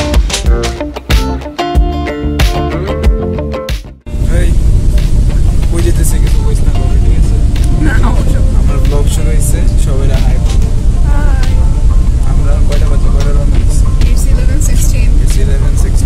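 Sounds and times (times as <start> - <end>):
guitar music: 0.0 - 16.0
bus cabin low rumble: 4.1 - 16.0.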